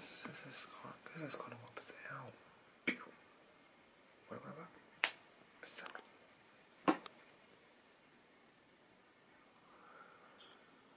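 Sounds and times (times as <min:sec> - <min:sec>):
whispered hiss: 0:00.0 - 0:10.9.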